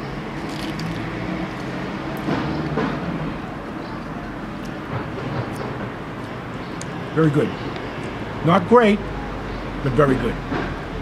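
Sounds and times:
traffic engine hum: 0:00.0 - 0:11.0.

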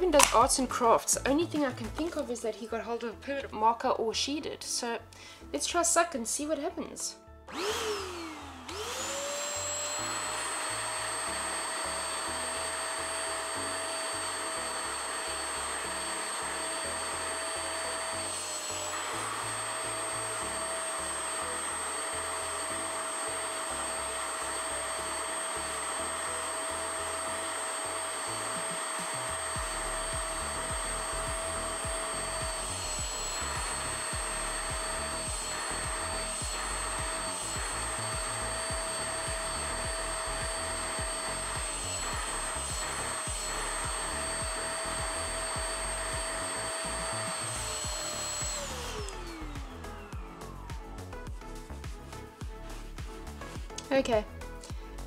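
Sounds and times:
suction motor whining: 0:07.5 - 0:51.6
nozzle sucking at carpet: 0:07.9 - 0:53.6.

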